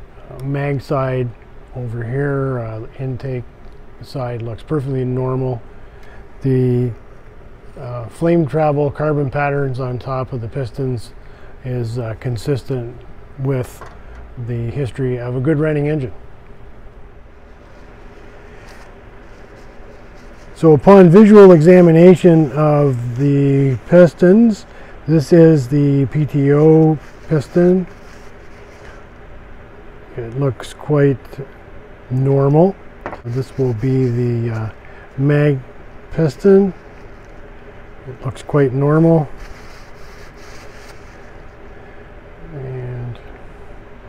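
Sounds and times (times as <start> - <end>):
low background hum: 0.0 - 44.0
faint handling sounds: 11.8 - 29.5, 32.5 - 43.5.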